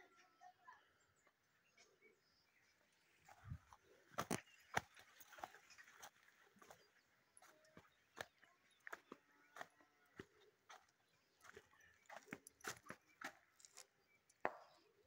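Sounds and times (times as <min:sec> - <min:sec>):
footsteps clicks and scuffs: 0:04.1 - 0:14.8.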